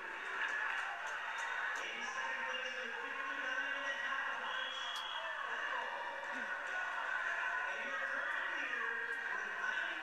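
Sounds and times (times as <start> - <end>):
crowd hubbub through tv speaker: 0.0 - 10.0.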